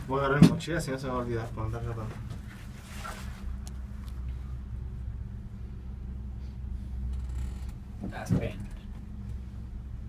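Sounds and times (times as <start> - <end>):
gondola cabin hum and rumble: 0.0 - 10.0.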